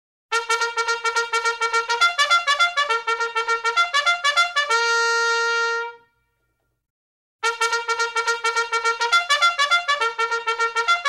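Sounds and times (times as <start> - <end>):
trumpet fanfare: 0.3 - 6.2, 7.4 - 11.0.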